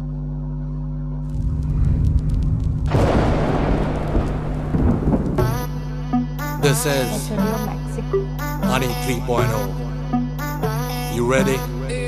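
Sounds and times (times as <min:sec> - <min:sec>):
steady low drone: 0:00.0 - 0:10.8
rain: 0:01.3 - 0:05.5
rumbling thunder: 0:01.3 - 0:05.8
person speaking: 0:06.6 - 0:09.7.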